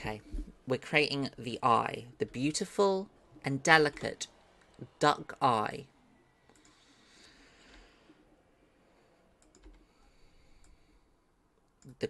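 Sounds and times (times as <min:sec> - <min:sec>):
faint computer mouse clicks: 0:06.5 - 0:06.8.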